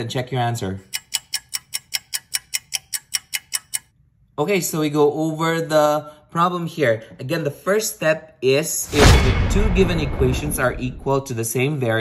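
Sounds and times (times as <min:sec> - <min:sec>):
clock-like timer ticks: 0:00.8 - 0:03.9.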